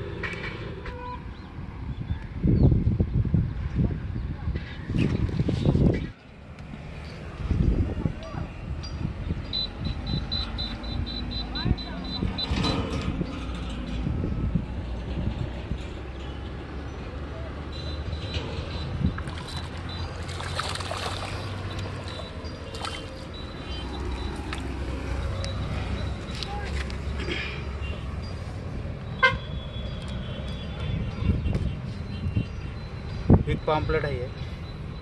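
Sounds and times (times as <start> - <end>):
fish splashing in water: 19.2 - 25.2.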